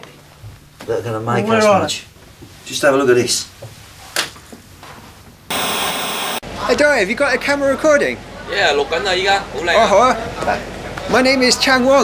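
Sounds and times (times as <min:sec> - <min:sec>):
television static hiss: 0:05.5 - 0:06.4.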